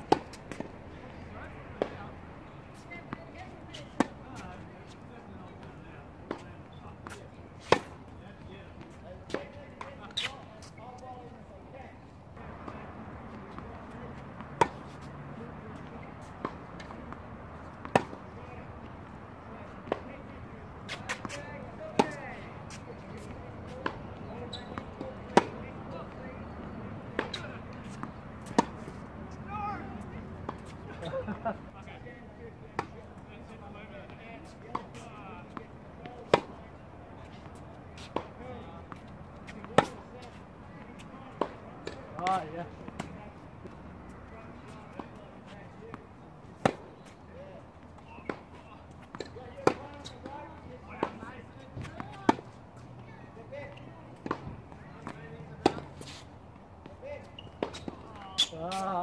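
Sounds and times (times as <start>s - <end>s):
tennis ball bouncing on court: 0.0s - 5.7s, 6.3s - 8.1s, 12.4s - 31.7s, 32.7s - 47.2s, 47.9s - 56.2s, 56.8s - 59.0s
tennis ball hitting racket: 0.0s - 8.1s, 8.8s - 10.8s, 12.4s - 31.7s, 32.7s - 47.2s, 47.9s - 53.0s, 53.6s - 59.0s.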